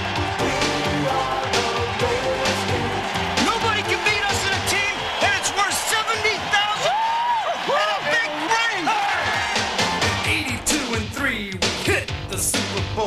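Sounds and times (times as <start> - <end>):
rap backing track: 0.0 - 6.8, 8.0 - 13.0.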